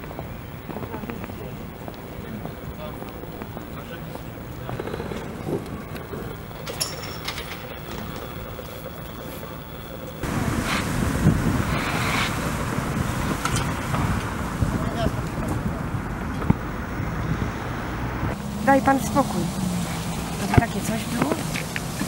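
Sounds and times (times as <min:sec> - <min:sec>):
faint voices: 0:00.0 - 0:06.8
wind buffeting microphone: 0:00.0 - 0:22.0.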